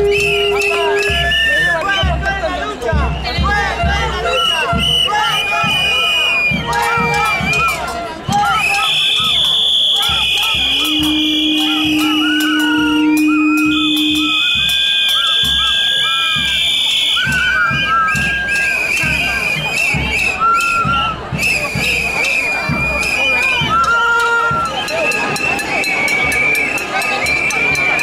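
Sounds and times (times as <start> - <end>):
whistles blowing: 0.0 - 2.3, 2.9 - 28.0
crowd noise: 0.0 - 28.0
low horn-like tone: 10.7 - 15.2.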